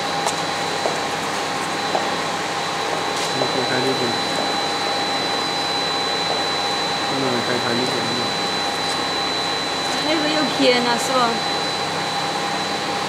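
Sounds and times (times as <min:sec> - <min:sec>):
machine whirring with whine: 0:00.0 - 0:13.0.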